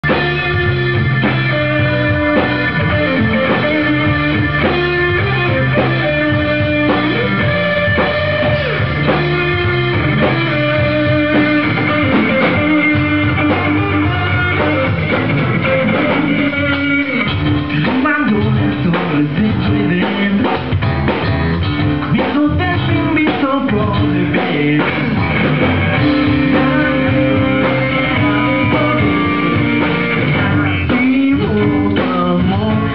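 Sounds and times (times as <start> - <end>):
bass guitar: 0.0 - 32.9
drum kit: 0.0 - 32.9
electric guitar: 0.0 - 32.9.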